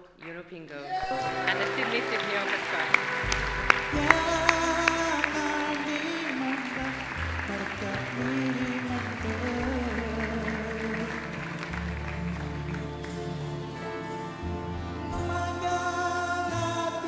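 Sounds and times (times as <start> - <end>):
audience applause: 0.8 - 14.1
music with bass line: 3.0 - 17.0.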